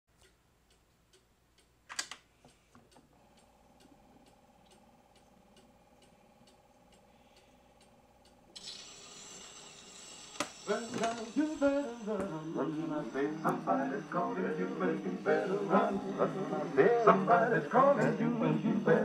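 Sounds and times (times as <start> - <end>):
phonograph ticking: 0.1 - 19.0
record surface hiss: 0.1 - 19.0
phonograph motor hum: 2.8 - 19.0
phonograph click: 10.4 - 12.3.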